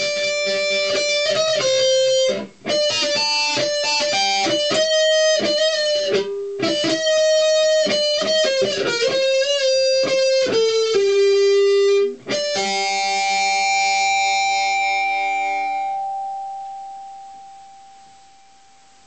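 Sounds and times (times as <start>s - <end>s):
electric guitar notes with vibrato: 0.0s - 18.6s.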